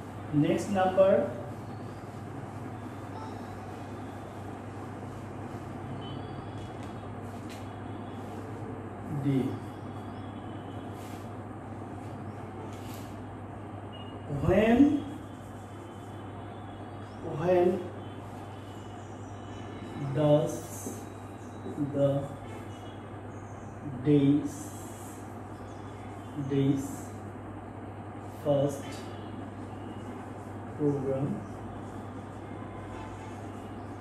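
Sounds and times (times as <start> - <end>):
low machine hum: 0.0 - 34.0.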